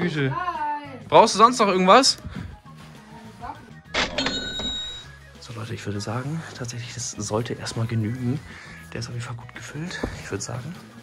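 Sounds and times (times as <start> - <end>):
soft background music: 0.0 - 11.0
bright bell-like chime: 4.0 - 5.1.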